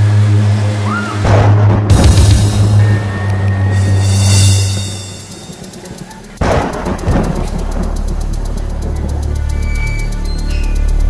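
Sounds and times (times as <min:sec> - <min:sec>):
low drone: 0:00.0 - 0:11.0
deep boom hit: 0:01.2 - 0:03.2
fast even ticking: 0:02.0 - 0:11.0.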